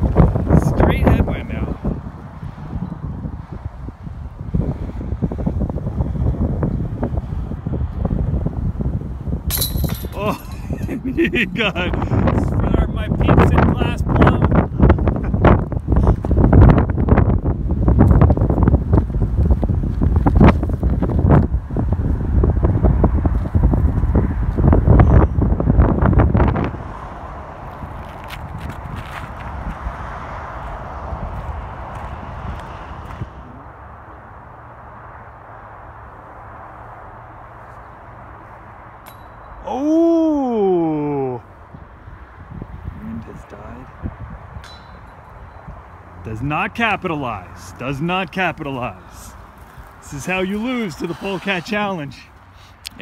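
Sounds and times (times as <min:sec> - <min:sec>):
wind buffeting microphone: 0:00.0 - 0:35.8, 0:37.9 - 0:53.0
person saying ooh: 0:39.6 - 0:41.4.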